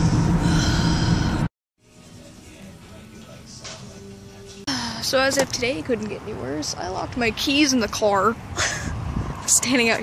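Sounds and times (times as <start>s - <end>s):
breathy sigh: 0.4s - 1.5s.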